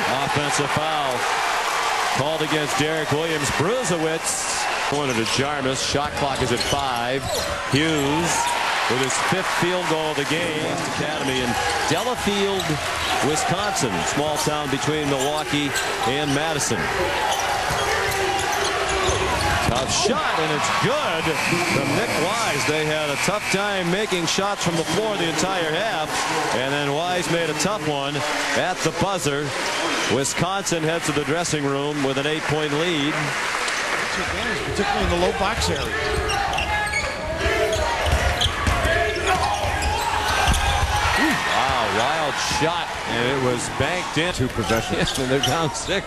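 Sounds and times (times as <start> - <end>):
crowd and court sounds: 0.0 - 46.0
basketball bouncing: 38.0 - 41.8.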